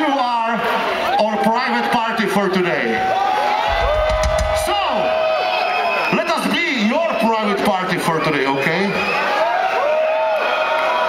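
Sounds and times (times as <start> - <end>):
concert crowd cheering: 0.0 - 11.0.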